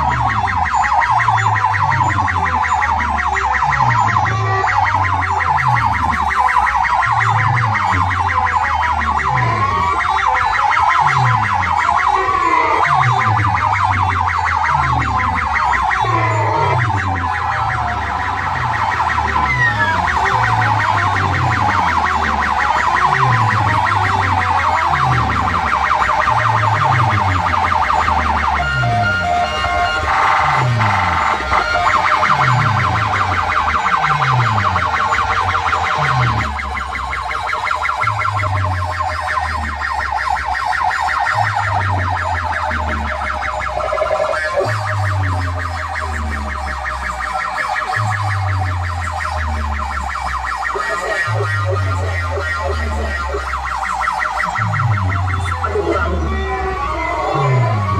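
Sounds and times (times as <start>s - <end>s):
shrill warbling siren-like sound: 0.0s - 57.9s.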